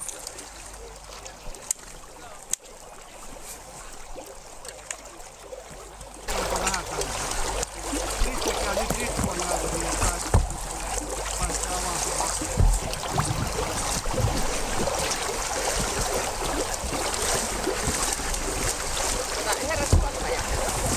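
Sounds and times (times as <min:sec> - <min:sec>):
water and ice slush splashing: 0:00.0 - 0:20.9
wind on microphone rumble: 0:12.4 - 0:20.9.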